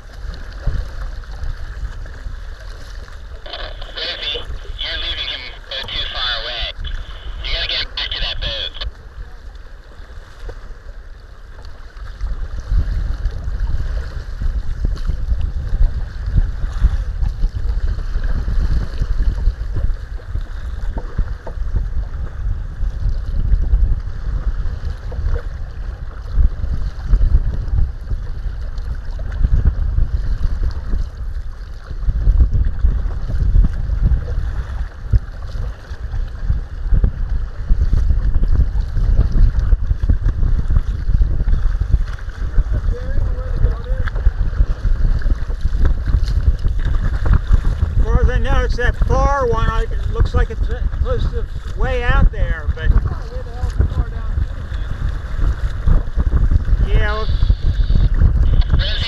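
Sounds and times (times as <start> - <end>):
water sloshing against hull: 0.0 - 59.0
wind buffeting microphone: 0.0 - 59.0.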